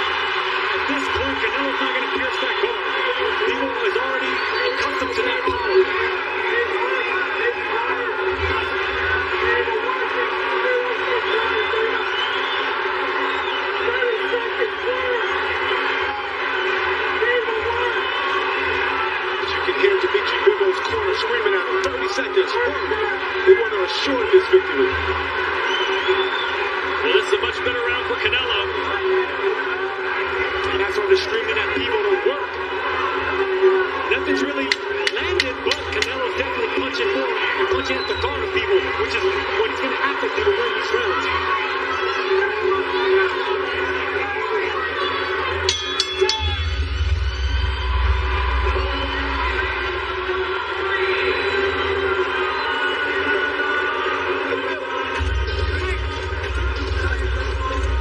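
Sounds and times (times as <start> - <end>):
crowd shouting and chanting: 0.0 - 58.0
music: 0.0 - 58.0.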